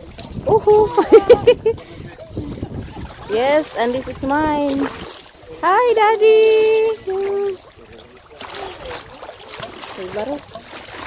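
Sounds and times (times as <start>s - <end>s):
wind on microphone: 0.0s - 5.2s
waves lapping against rocks: 0.0s - 11.0s.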